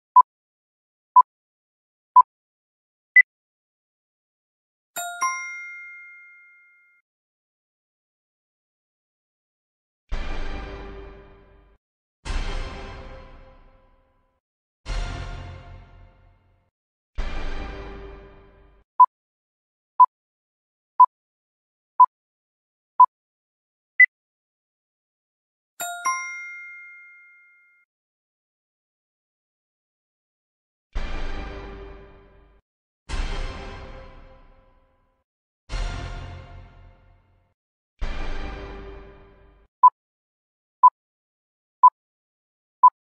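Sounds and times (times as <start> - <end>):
bright bell-like ding: 5.0 - 7.0, 25.8 - 27.8
two-note chime: 5.0 - 7.0, 25.8 - 27.8.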